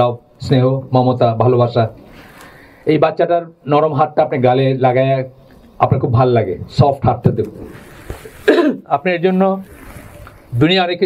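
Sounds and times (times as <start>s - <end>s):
man clearing throat: 8.4s - 8.9s.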